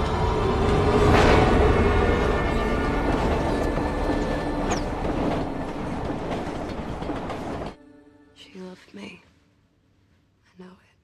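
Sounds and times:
train rushing past: 0:00.0 - 0:07.8.

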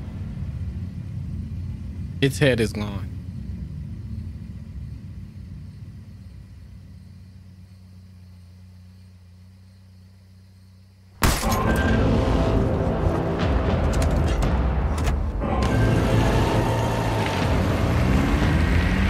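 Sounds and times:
car engine rumble: 0:00.0 - 0:19.0
loud music: 0:15.4 - 0:19.0.

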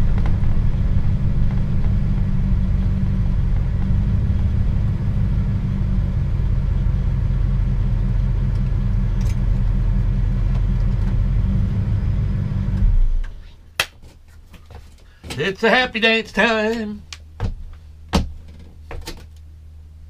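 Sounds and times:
engine and road rumble: 0:00.0 - 0:20.0.

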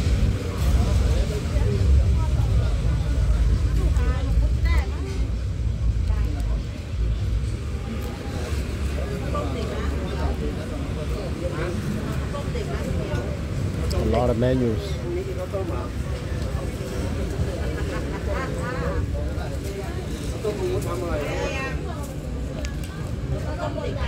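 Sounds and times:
background voices talking: 0:00.0 - 0:24.0.

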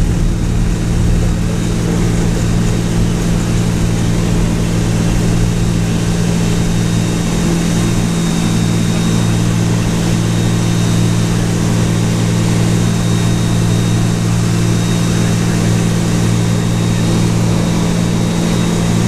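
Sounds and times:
rush of airflow: 0:00.0 - 0:11.6
propeller engine running steadily: 0:00.0 - 0:19.0.

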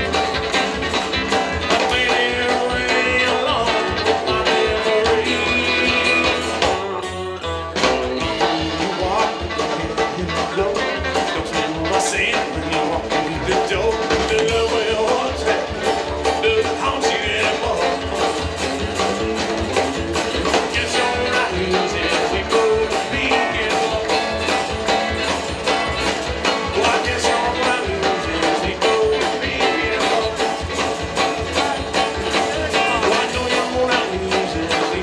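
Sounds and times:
acoustic guitar: 0:00.0 - 0:35.0
drums: 0:00.0 - 0:35.0
electric guitar: 0:00.0 - 0:35.0
upright bass: 0:00.0 - 0:35.0.

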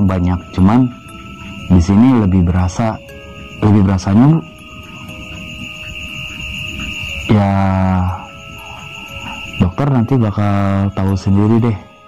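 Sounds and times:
low drone: 0:00.0 - 0:12.0
steady high-pitched tone: 0:00.0 - 0:12.0.

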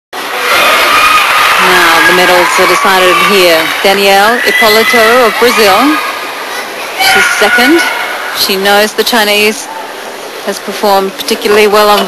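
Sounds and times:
crowd murmur: 0:00.2 - 0:12.0.

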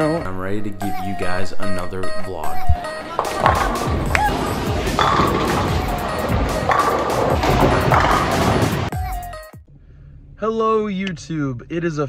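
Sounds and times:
bowling ball rolling: 0:03.0 - 0:08.9
knocks: 0:03.2 - 0:08.9.

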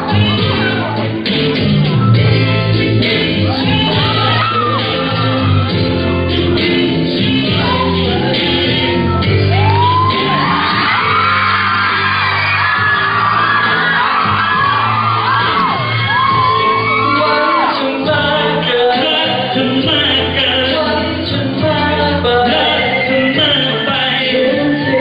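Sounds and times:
pop song over sound system: 0:00.0 - 0:25.0
audience screaming: 0:03.4 - 0:06.0, 0:07.3 - 0:19.7, 0:22.2 - 0:25.0.

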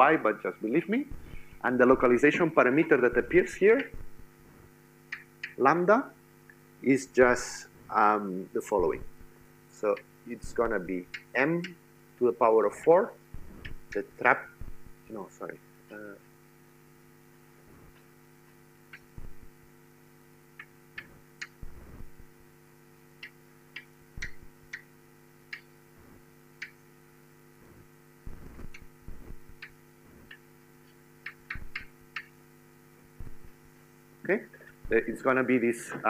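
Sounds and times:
steady electrical hum: 0:00.0 - 0:36.0.

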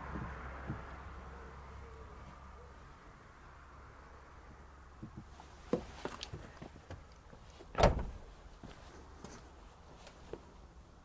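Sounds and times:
car door shutting thump: 0:07.8 - 0:08.2.

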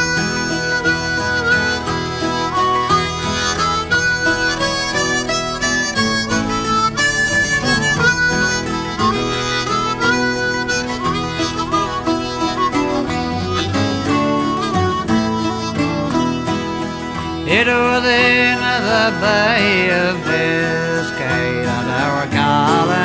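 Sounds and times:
harmonica melody with bent notes: 0:00.0 - 0:23.0
strummed guitar: 0:00.0 - 0:23.0.

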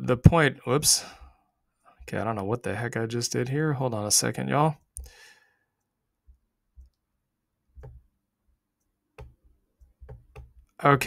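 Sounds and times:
breathy sigh: 0:05.0 - 0:05.6.

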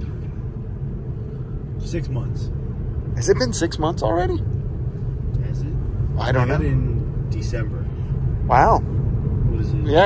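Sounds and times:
road and tyre rumble in car: 0:00.0 - 0:10.0
man speaking: 0:05.4 - 0:07.9.

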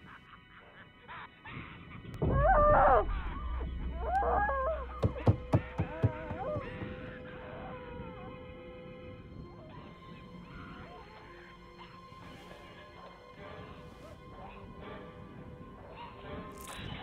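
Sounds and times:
deep rumble: 0:02.2 - 0:07.5
wavering high-pitched wails: 0:02.2 - 0:13.0
sharp knocks: 0:04.9 - 0:07.1.

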